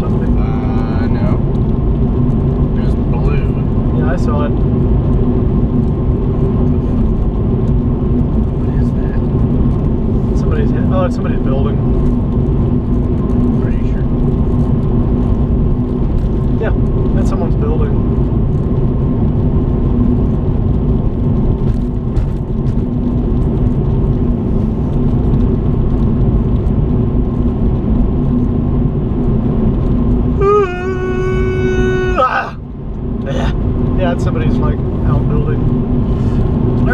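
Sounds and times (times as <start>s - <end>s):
car road and engine noise: 0.0s - 36.9s.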